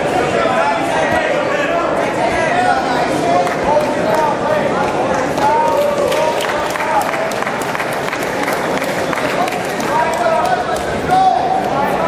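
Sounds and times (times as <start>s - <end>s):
crowd talking and shouting: 0.0s - 12.0s.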